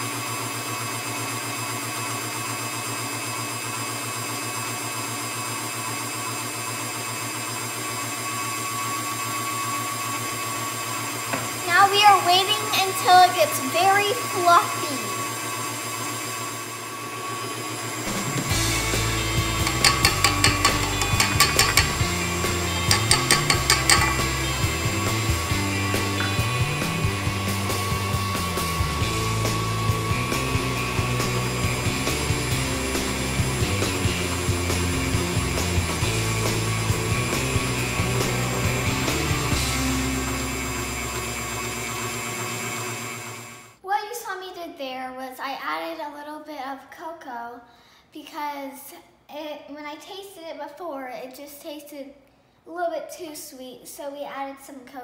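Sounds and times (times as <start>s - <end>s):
stand mixer running: 0.0s - 43.8s
background music with bass line: 18.2s - 40.6s
wire whisk beating in steel bowl: 19.4s - 25.1s.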